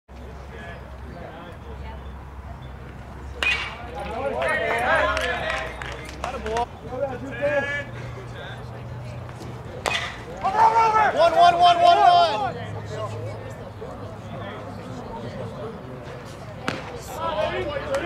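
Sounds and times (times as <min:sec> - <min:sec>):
players calling out: 0:00.4 - 0:18.0
bat cracking ball: 0:03.4 - 0:04.2, 0:09.8 - 0:10.3, 0:16.6 - 0:17.0.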